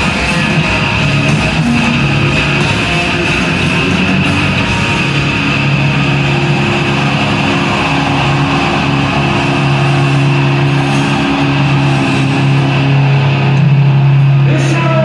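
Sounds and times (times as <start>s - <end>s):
electric guitars droning chord: 0.0s - 15.0s.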